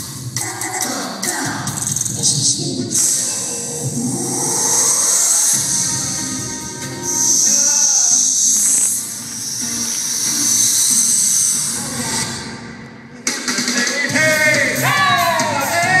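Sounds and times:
show music: 0.0 - 16.0
person singing: 0.4 - 9.1, 13.1 - 16.0.

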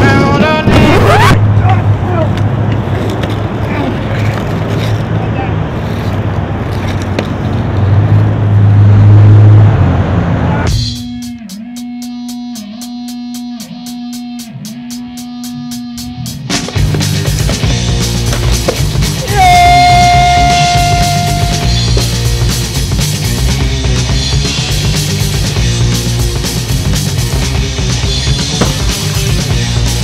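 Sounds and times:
song with regular beat: 10.7 - 30.0.

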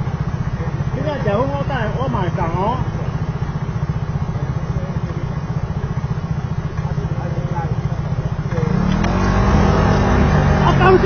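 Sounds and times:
motor scooter engine idling and revving: 0.0 - 11.0.

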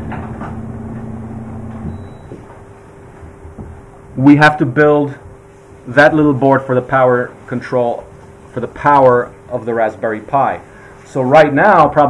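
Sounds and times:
low background hum: 0.0 - 12.0
faint held tone: 0.6 - 2.5.

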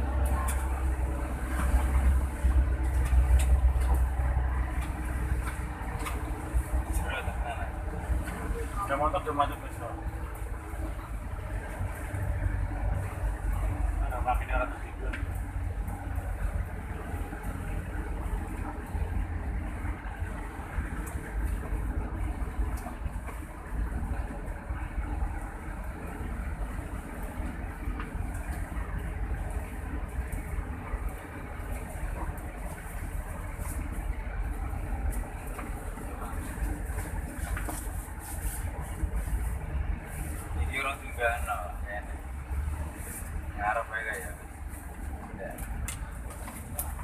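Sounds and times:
road noise: 0.0 - 47.0
vehicle engine rumble: 0.0 - 47.0.

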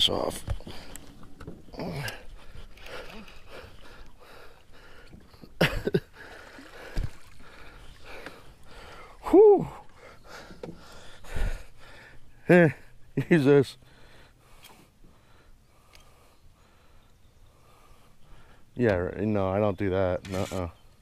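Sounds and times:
man exclaiming: 9.2 - 9.8.

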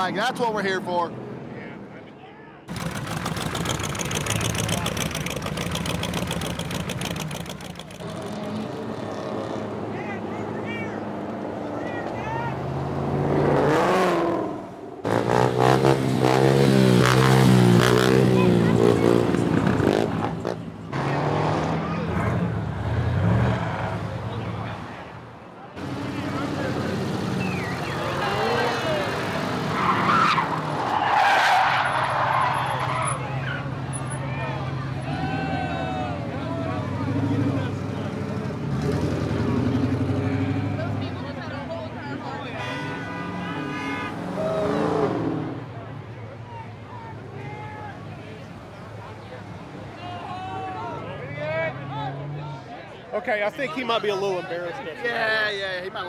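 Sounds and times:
car engines revving: 2.7 - 52.8
crowd voices: 16.9 - 56.0.

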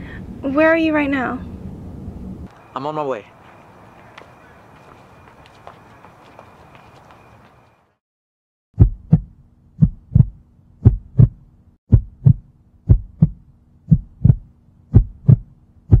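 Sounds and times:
heartbeat thumps: 8.8 - 16.0.

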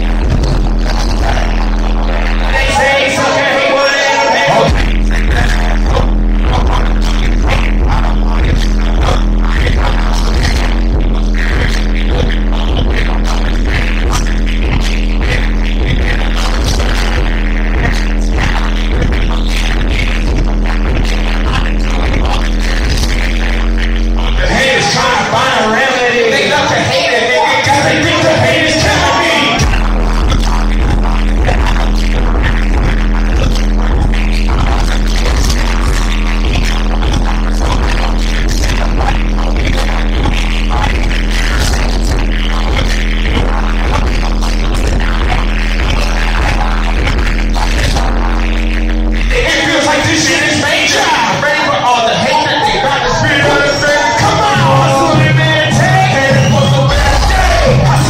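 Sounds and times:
heavy bass-driven hip-hop beat: 0.0 - 58.0
rapping over microphones: 0.0 - 58.0.

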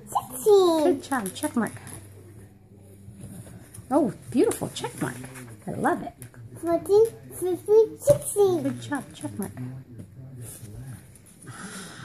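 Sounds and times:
woman speaking: 0.8 - 2.0.

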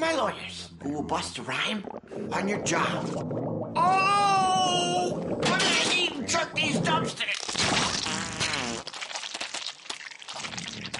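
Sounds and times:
voice making wavering buzzy sound: 1.6 - 7.4.

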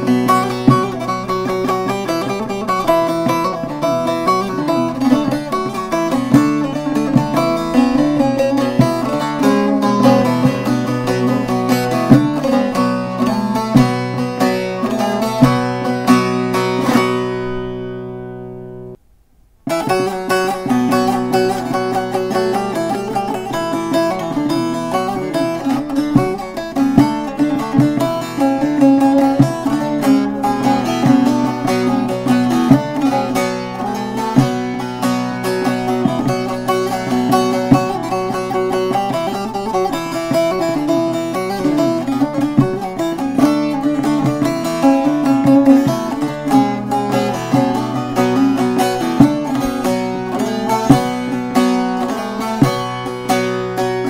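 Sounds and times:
plucked lute fast folk tune: 0.0 - 19.0, 19.7 - 54.0.

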